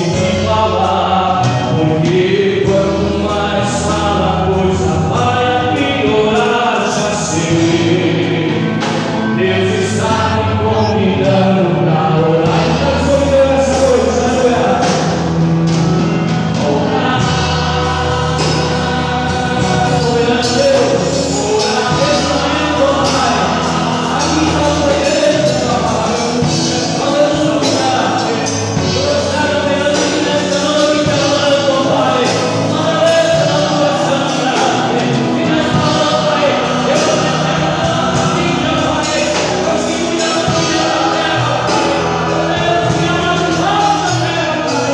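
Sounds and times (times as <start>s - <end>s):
man singing through a microphone: 0.0s - 44.9s
musical accompaniment: 0.0s - 44.9s.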